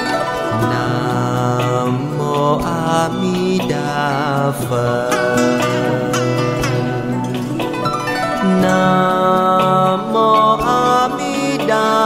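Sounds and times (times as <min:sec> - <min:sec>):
plucked strings: 0:00.0 - 0:12.0
slow chanting voice: 0:00.3 - 0:07.8, 0:08.4 - 0:12.0.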